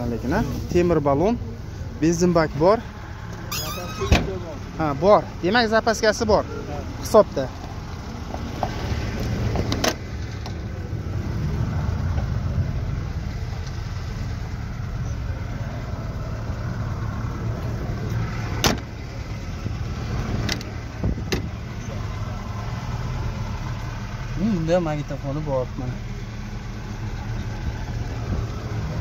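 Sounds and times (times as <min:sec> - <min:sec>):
car engine idling: 0:00.0 - 0:29.0.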